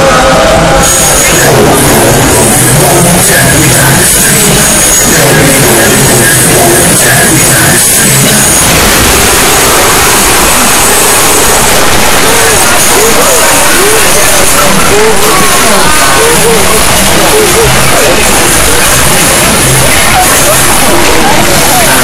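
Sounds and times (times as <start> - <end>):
dense distorted roaring: 0.0 - 22.0.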